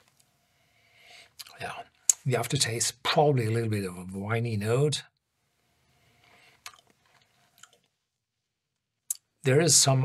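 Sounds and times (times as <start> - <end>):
faint mouth clicks: 6.6 - 7.0.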